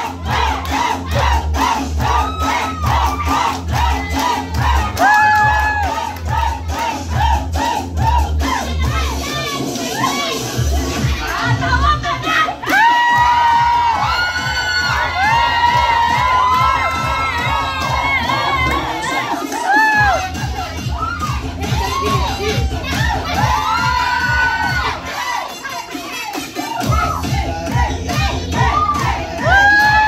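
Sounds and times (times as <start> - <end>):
dance music with bass beat: 0.0 - 30.0
audience cheering and shrieking: 0.3 - 6.5, 12.4 - 25.5, 28.5 - 30.0.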